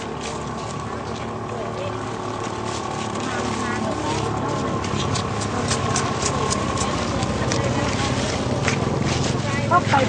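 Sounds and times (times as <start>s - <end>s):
crowd chatter: 0.0s - 10.0s
low mechanical hum: 0.0s - 10.0s.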